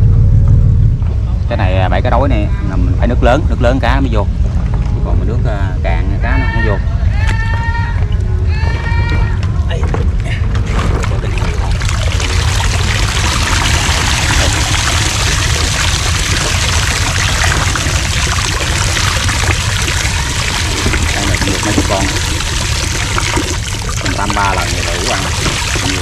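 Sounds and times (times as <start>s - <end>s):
water pouring and splashing: 10.6s - 26.0s.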